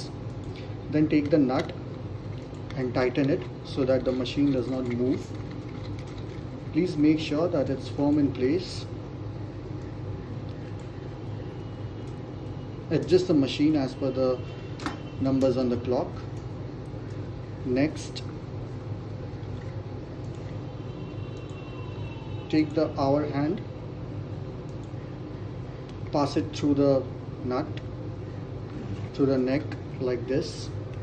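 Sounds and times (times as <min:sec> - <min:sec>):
low room hum: 0:00.0 - 0:31.0.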